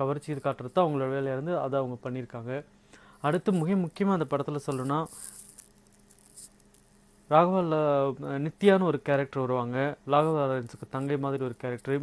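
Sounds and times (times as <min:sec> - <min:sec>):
person talking: 0:00.0 - 0:05.4, 0:07.3 - 0:12.0
faint steady hum: 0:00.0 - 0:12.0.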